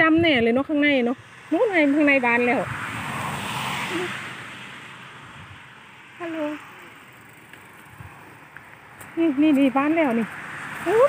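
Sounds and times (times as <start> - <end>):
passing vehicle road noise: 0.0 - 11.0.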